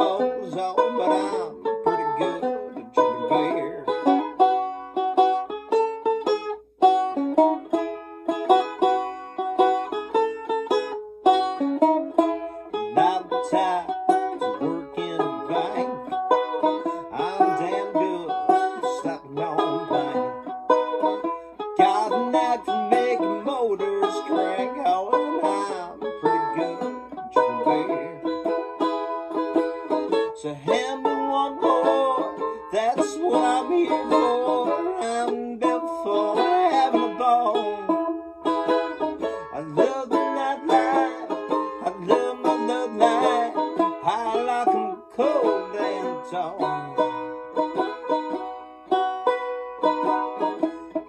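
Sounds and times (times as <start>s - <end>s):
banjo playing: 0.0s - 51.0s.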